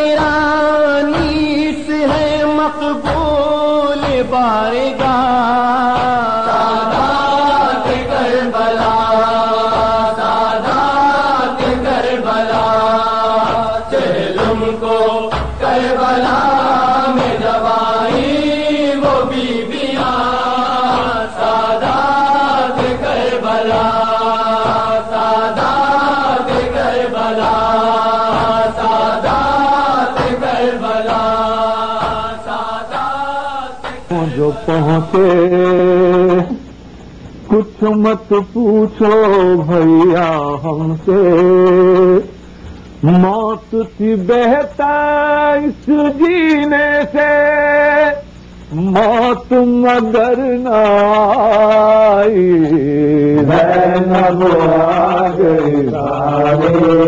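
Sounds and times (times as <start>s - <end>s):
person chanting a lament: 0.0s - 36.6s, 43.0s - 57.0s
rhythmic beat: 0.0s - 36.9s.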